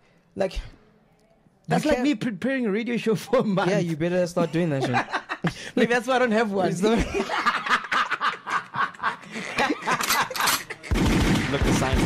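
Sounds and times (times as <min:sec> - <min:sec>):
men laughing hard: 0:04.4 - 0:05.8, 0:06.7 - 0:10.9.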